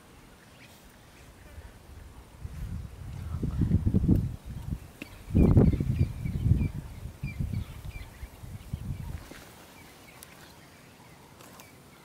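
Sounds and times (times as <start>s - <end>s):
bird chirping: 4.4s - 12.0s.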